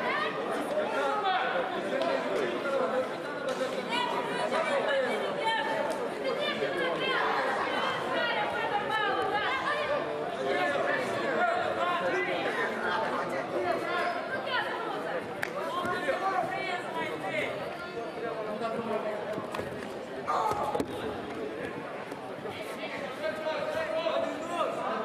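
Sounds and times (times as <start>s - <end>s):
many voices talking and calling out: 0.0s - 25.0s.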